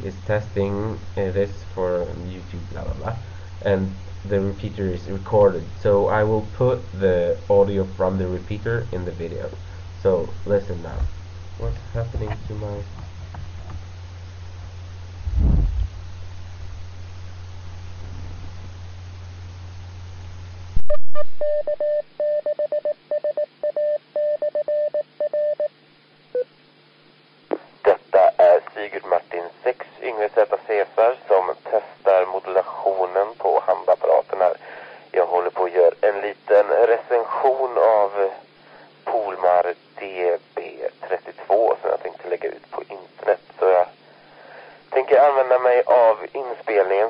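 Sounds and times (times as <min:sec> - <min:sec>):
man speaking over radio: 0:00.0 - 0:12.9, 0:27.8 - 0:44.0, 0:44.9 - 0:47.0.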